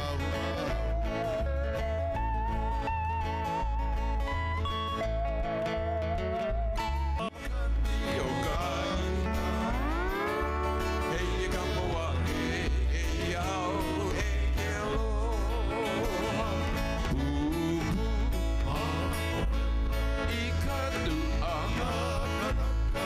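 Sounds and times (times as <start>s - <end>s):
electric bass line: 0.0s - 23.0s
lap steel guitar melody: 0.0s - 23.0s
strummed acoustic guitar: 0.0s - 23.0s.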